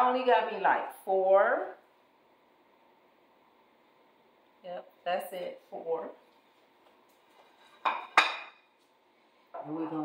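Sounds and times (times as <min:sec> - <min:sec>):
plate clattering on countertop: 0:07.4 - 0:08.6.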